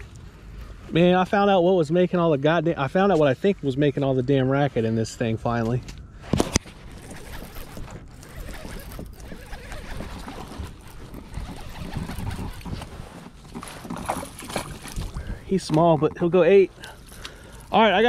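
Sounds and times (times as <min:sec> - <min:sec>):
fishing reel winding: 0:07.0 - 0:12.4
handling knocks and rustle: 0:10.0 - 0:17.6.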